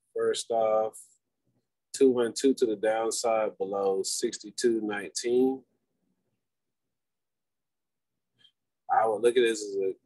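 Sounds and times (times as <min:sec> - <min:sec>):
man speaking: 0:00.0 - 0:01.2, 0:01.9 - 0:05.7, 0:08.8 - 0:10.0.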